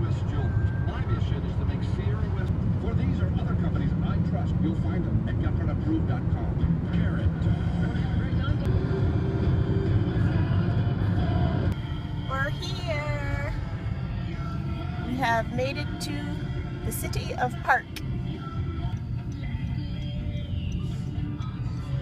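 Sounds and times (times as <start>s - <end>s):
road and engine noise in car: 0.0s - 22.0s.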